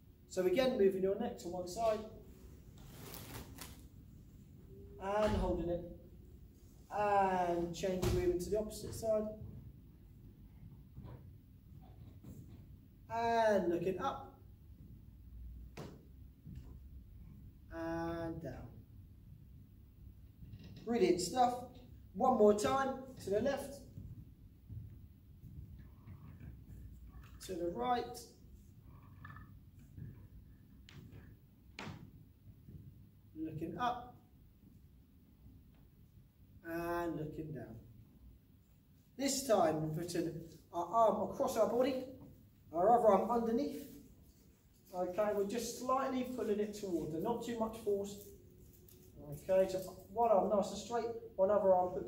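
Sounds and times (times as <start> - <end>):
faint soft rustle: 1.7 - 4.5.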